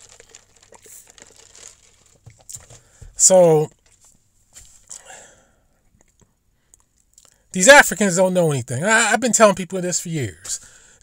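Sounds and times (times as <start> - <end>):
faint crinkling: 0.0 - 5.1.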